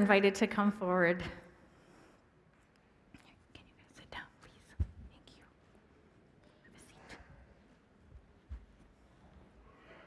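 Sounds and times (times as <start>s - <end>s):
faint whispering: 2.9s - 8.0s
small knocks and shuffles: 4.6s - 9.7s.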